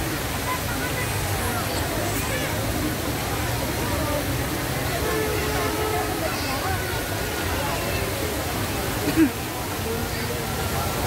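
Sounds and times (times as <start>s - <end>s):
crowd voices babbling: 0.0s - 11.0s
fountain water rushing: 0.0s - 11.0s.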